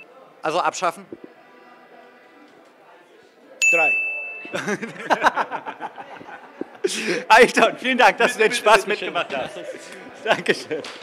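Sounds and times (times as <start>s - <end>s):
faint background music: 0.0s - 11.0s
man's voice: 6.0s - 10.8s.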